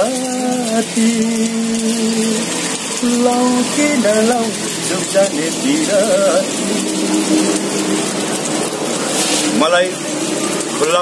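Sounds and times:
man singing unaccompanied: 0.0s - 7.1s.

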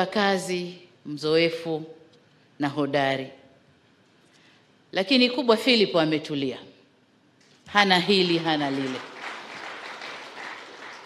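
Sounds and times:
audience applauding: 8.2s - 11.0s.

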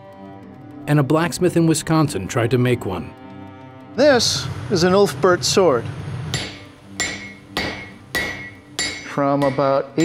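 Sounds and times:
hammer striking steel on anvil: 6.3s - 10.0s.

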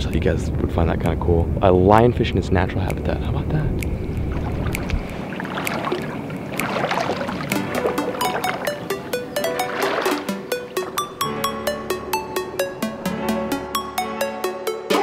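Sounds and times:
electronic beat music: 3.8s - 15.0s.

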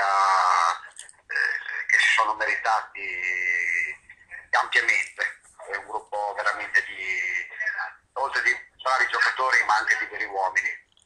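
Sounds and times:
man speaking over telephone: 0.0s - 10.9s.

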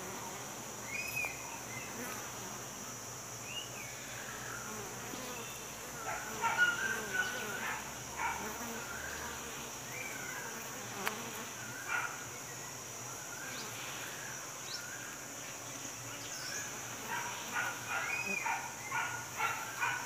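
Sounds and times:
bees buzzing: 0.0s - 14.3s.

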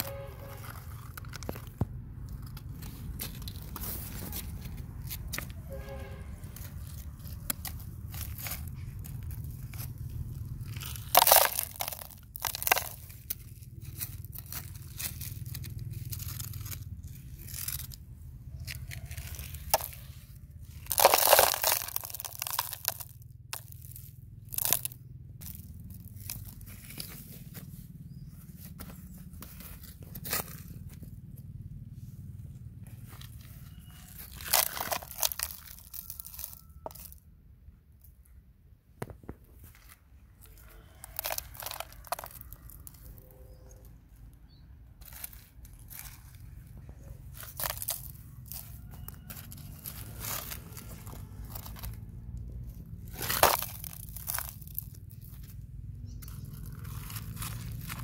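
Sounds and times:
toy shovel scraping gravelly soil: 0.0s - 31.0s, 33.1s - 37.2s, 39.8s - 43.9s, 44.5s - 58.0s
low steady rumble: 0.0s - 58.0s
stones rattling into plastic truck: 10.7s - 13.4s, 20.8s - 23.9s, 34.2s - 37.2s, 40.9s - 43.0s, 47.3s - 52.0s, 53.0s - 55.4s.

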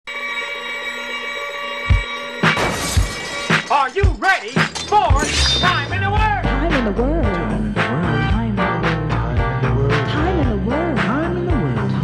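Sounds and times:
theme song with drum beat: 1.8s - 12.0s
glass shattering crash: 2.4s - 6.2s
person singing: 5.8s - 12.0s.

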